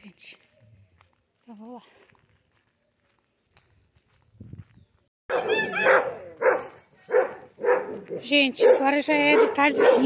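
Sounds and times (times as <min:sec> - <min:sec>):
dog barking: 0:05.3 - 0:10.0.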